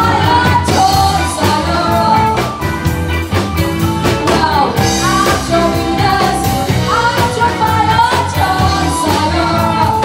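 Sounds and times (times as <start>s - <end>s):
person singing pop song: 0.0s - 2.7s, 4.1s - 10.0s
backing track with steady beat: 0.0s - 10.0s.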